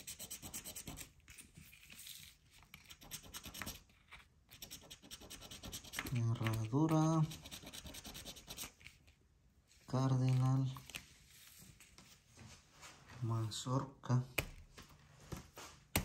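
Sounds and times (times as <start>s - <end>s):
lottery ticket being scratched: 4.6s - 8.7s.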